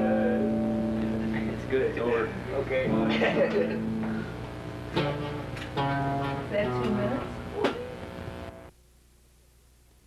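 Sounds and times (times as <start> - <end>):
plucked guitar notes ringing: 0.0 - 8.6.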